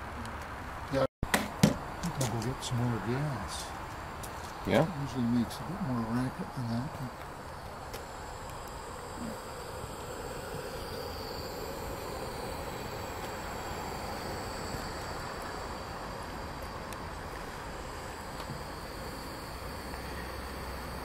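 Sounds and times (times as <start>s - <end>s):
model steam engine hissing: 8.0s - 21.0s.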